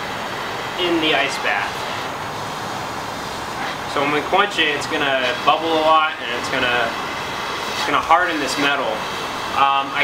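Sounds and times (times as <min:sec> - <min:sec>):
propane torch hissing: 0:00.0 - 0:10.0.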